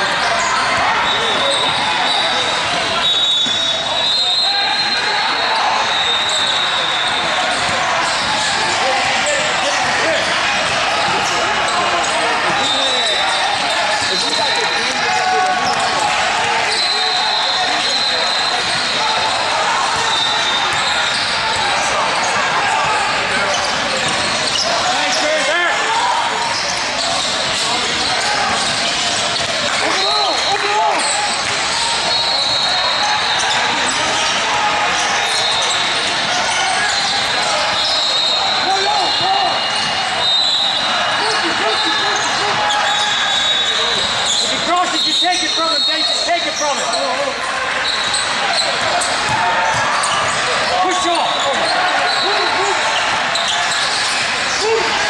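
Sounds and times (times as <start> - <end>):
people calling out and talking: 0.0 - 55.0
sneaker squeaks: 0.1 - 25.6, 26.3 - 54.8
basketball bouncing on court: 19.9 - 24.7, 26.6 - 33.3, 47.8 - 50.7.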